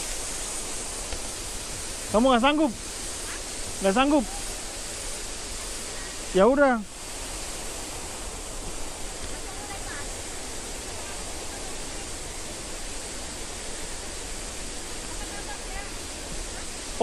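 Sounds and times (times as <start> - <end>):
rushing flowing water: 0.0 - 17.0.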